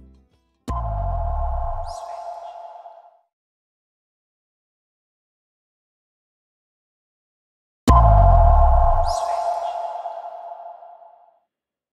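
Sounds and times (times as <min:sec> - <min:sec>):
electronic hit with deep bass: 0:07.9 - 0:10.6
falling whoosh: 0:07.9 - 0:11.2
held ringing tone: 0:08.1 - 0:11.1.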